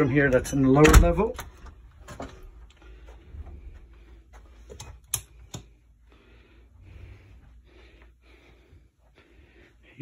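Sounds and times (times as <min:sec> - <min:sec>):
footsteps: 0:01.6 - 0:05.1.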